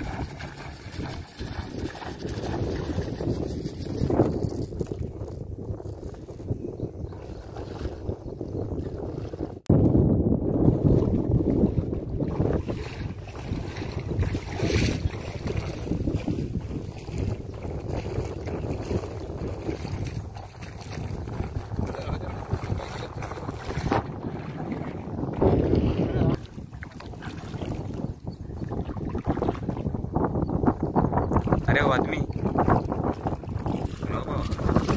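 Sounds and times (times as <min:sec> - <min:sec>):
water lapping around legs: 0:00.0 - 0:05.4, 0:07.1 - 0:08.2, 0:10.7 - 0:30.0, 0:31.3 - 0:34.9
wind buffeting microphone: 0:00.0 - 0:34.9.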